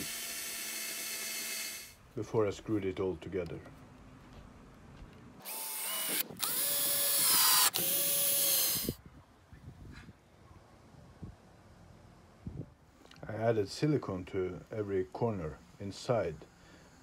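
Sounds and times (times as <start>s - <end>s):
drill driving screw into wood: 0.0s - 2.0s, 5.4s - 9.0s.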